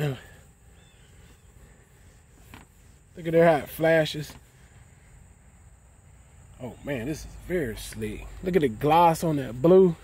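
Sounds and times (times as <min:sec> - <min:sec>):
soft rustle: 0:00.0 - 0:06.5
steady high hiss: 0:00.0 - 0:10.0.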